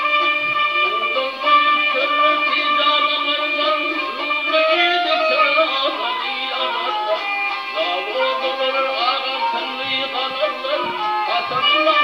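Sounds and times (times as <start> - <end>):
bowed fiddle melody: 0.0 - 12.0
plucked lute: 0.0 - 12.0.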